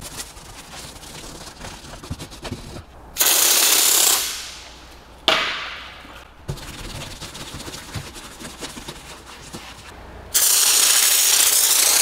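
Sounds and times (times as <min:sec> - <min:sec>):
brush scrubbing: 0:00.0 - 0:02.8, 0:06.5 - 0:10.0
spray bottle hissing: 0:10.4 - 0:12.0.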